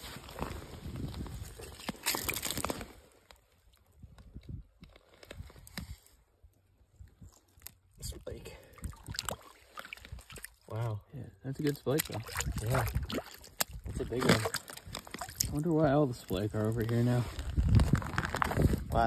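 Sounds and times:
water sloshing and splashing: 0:08.6 - 0:10.8, 0:11.6 - 0:18.5.

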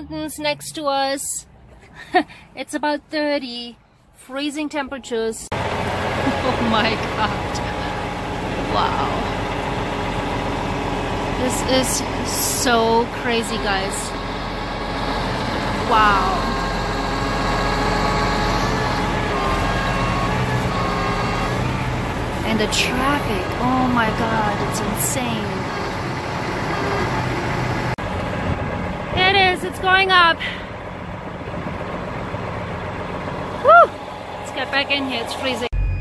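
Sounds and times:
highway traffic: 0:00.0 - 0:36.0
diesel engine idling: 0:05.5 - 0:36.0
high voice rising and falling: 0:15.8 - 0:17.0.

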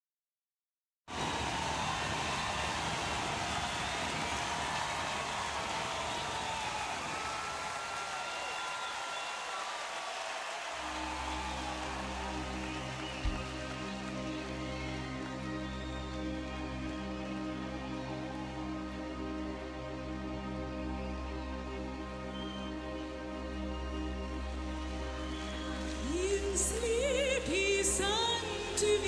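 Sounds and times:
sustained low chord: 0:10.9 - 0:29.0
gliding whistle-like tones: 0:11.0 - 0:16.6, 0:22.3 - 0:23.0.

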